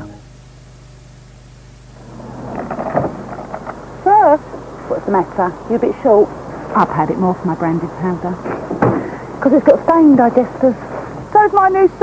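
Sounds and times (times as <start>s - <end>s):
mains hum: 0.0s - 12.0s
tape hiss: 0.0s - 12.0s
rumbling noise: 1.8s - 12.0s.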